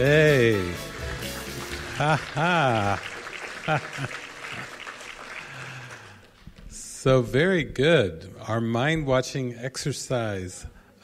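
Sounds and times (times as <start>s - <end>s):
audience applauding: 0.0s - 6.4s.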